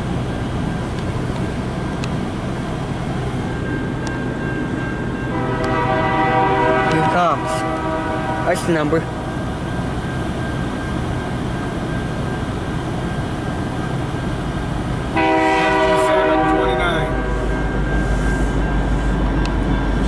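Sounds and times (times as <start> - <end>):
diesel locomotive engine rumbling: 0.0 - 20.0
locomotive air horn: 5.3 - 8.8, 15.1 - 18.5.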